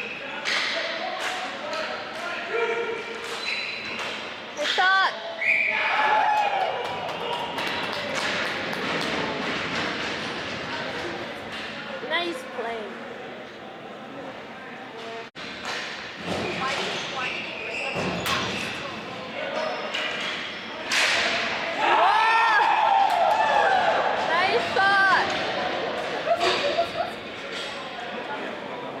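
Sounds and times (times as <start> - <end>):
people yelling and shouting: 20.8 - 27.2.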